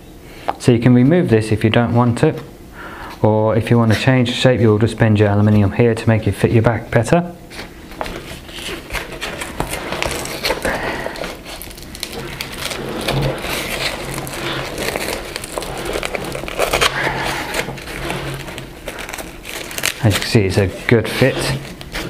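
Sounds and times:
nylon fabric rustling and scraping: 0:07.4 - 0:22.0.

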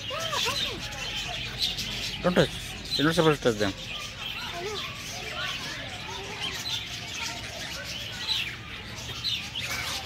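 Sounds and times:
budgerigars chattering: 0:00.0 - 0:10.0.

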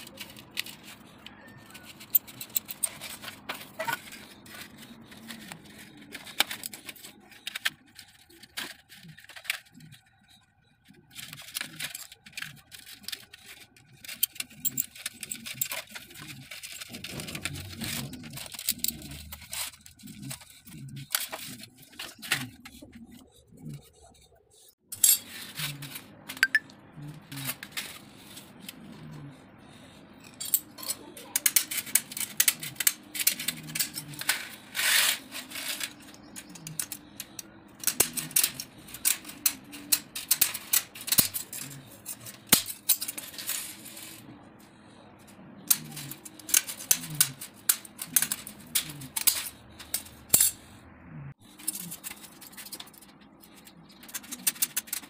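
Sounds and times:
snips cutting wire mesh: 0:45.6 - 0:50.5.

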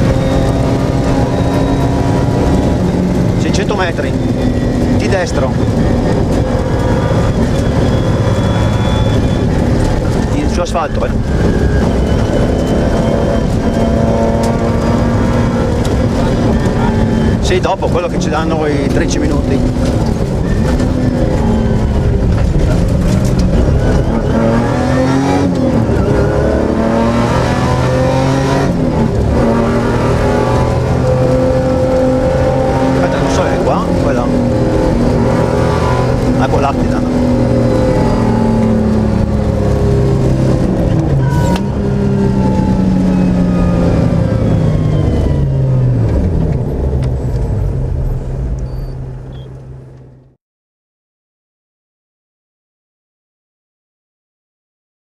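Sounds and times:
car engine revving: 0:00.0 - 0:50.3
road noise: 0:00.0 - 0:50.4.

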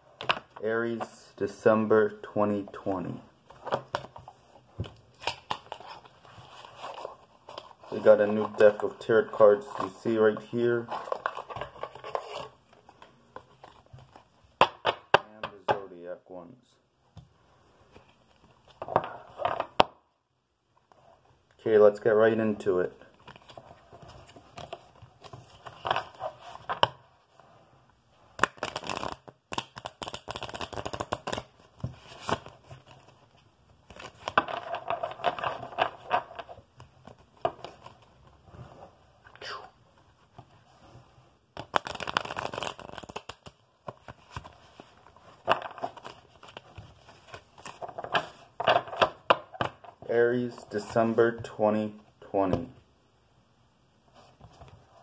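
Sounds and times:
cards being shuffled: 0:28.3 - 0:38.2, 0:41.6 - 0:51.2.

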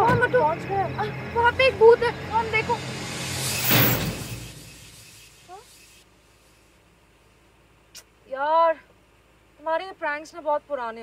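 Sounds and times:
short rising chirp: 0:02.2 - 0:06.7
crash-like hit: 0:02.6 - 0:05.8.

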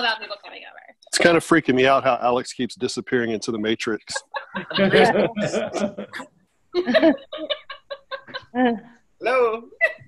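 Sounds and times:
person laughing: 0:04.1 - 0:08.8.

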